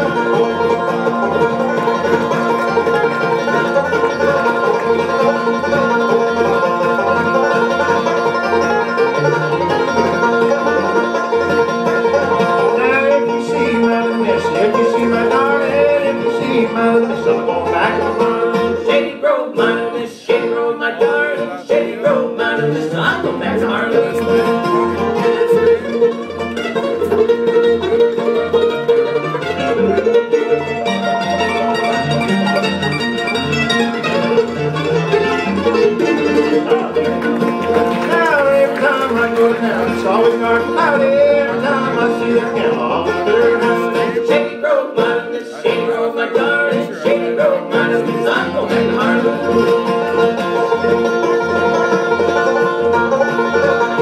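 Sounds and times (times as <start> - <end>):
acoustic guitar: 0.0 - 54.0
banjo: 0.0 - 54.0
mandolin: 0.0 - 54.0.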